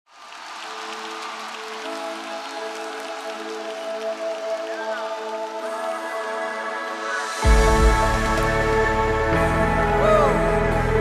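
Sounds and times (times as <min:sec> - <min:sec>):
keyboard pad chords: 0:00.7 - 0:11.0.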